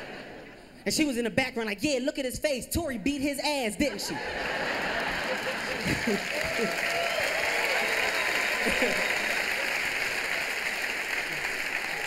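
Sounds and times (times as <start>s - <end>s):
people laughing and whooping: 4.0s - 12.0s
audience applauding: 4.5s - 12.0s.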